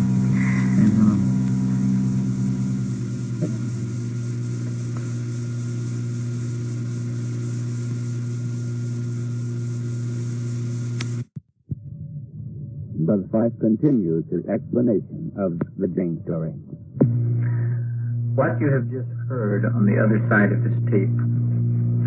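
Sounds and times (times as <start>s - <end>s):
tape hiss: 0.0s - 11.3s, 13.0s - 22.0s
electrical hum: 0.0s - 22.0s
click: 11.0s - 11.2s.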